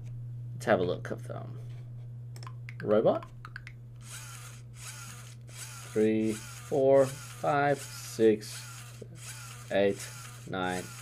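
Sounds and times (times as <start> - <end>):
toy motor whirring: 4.0 - 11.0.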